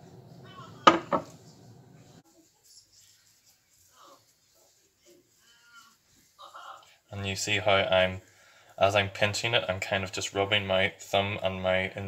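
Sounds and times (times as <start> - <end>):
low steady hum: 0.0 - 2.2.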